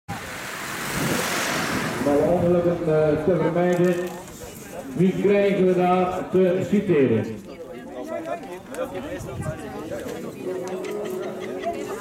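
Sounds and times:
car driving past: 0:00.1 - 0:03.3.

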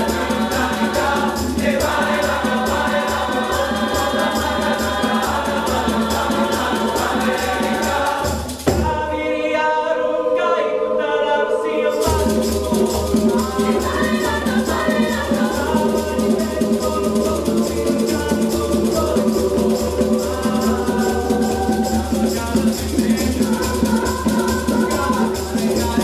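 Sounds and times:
conga drums and hand percussion: 0:00.0 - 0:09.2, 0:12.0 - 0:26.0
choir singing in parts: 0:00.0 - 0:26.0.

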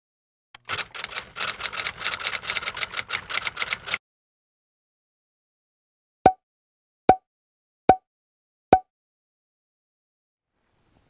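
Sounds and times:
rapid sharp clicks: 0:00.6 - 0:04.0.

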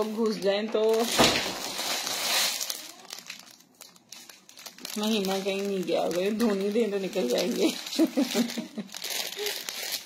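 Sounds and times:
fabric and plastic crinkling: 0:00.0 - 0:10.0.

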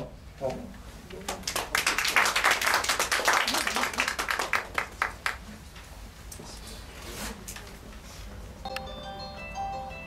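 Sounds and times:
audience clapping: 0:01.1 - 0:05.5.

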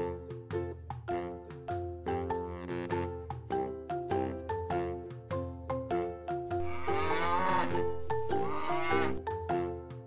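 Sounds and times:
light background music: 0:00.0 - 0:10.0
cow mooing: 0:06.6 - 0:09.2.

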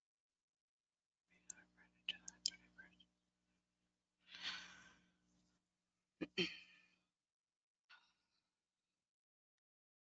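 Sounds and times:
faint whispered speech: 0:01.3 - 0:03.1.

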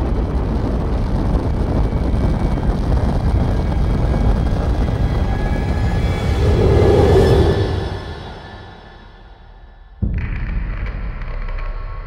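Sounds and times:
deep rocket rumble with crackling: 0:00.0 - 0:12.0.

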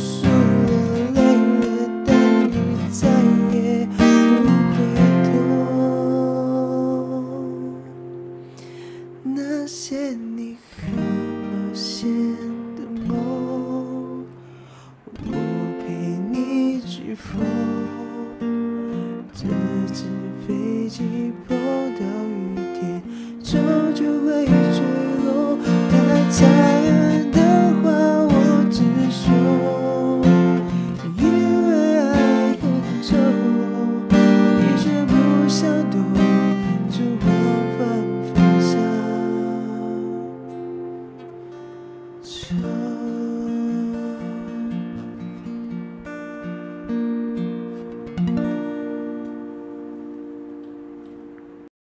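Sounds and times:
man singing a slow ballad: 0:00.0 - 0:40.9, 0:42.2 - 0:45.2
acoustic guitar strumming: 0:00.0 - 0:51.7.

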